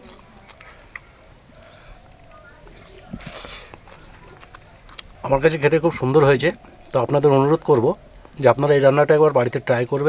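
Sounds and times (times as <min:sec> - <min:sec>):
wet chewing clicks: 0:00.0 - 0:08.6.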